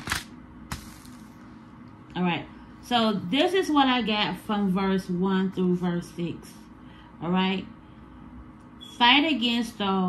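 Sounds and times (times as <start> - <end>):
thin pages flipping: 0.0 - 1.3.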